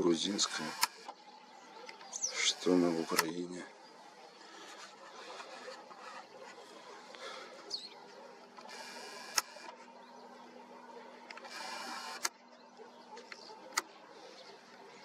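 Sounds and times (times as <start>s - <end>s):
camera lens zoom motor: 0.5s - 1.1s, 8.6s - 9.8s, 11.3s - 12.4s
sharp click: 0.7s - 1.2s, 9.2s - 9.7s.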